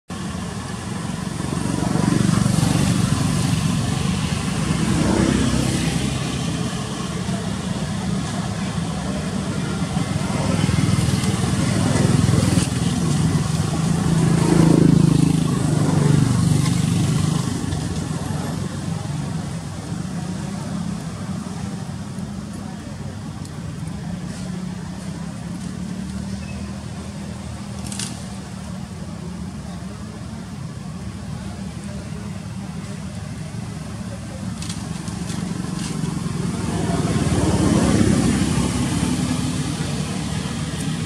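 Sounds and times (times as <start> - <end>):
traffic passing by: 0.1 - 41.0.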